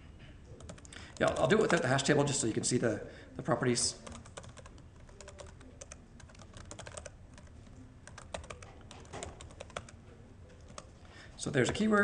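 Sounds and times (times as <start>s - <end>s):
keyboard typing: 0.6s - 2.0s, 4.0s - 10.0s, 10.6s - 11.0s.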